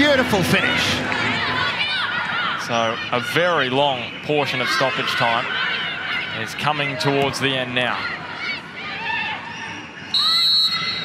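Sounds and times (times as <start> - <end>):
crowd noise: 0.0 - 11.0
referee's whistle blast: 10.1 - 11.0.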